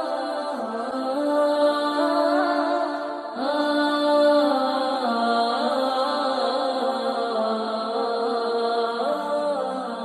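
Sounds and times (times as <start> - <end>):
melismatic vocal chanting: 0.0 - 10.0.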